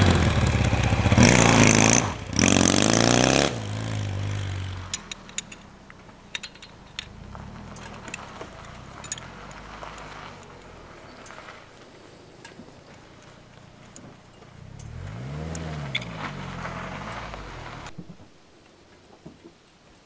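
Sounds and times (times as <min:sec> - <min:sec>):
motorcycle engine idling and revving: 0:00.0 - 0:18.0
metallic clicks and taps: 0:04.9 - 0:10.6.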